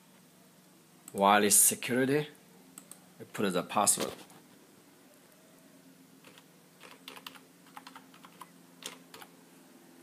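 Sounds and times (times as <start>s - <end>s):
computer keyboard typing: 6.2s - 9.3s.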